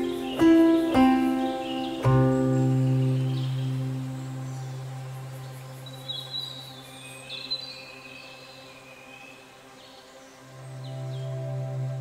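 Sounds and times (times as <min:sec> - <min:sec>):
low held chord: 0:00.0 - 0:07.3, 0:10.4 - 0:12.0.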